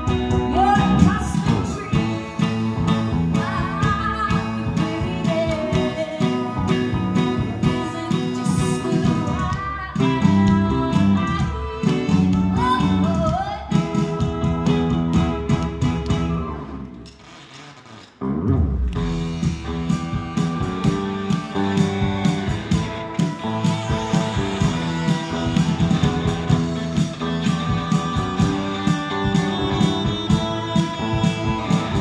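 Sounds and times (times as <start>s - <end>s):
electric guitar: 0.0s - 17.4s, 18.1s - 32.0s
bass guitar: 0.0s - 32.0s
drums: 0.0s - 32.0s
woman singing: 0.1s - 2.2s, 3.1s - 15.2s.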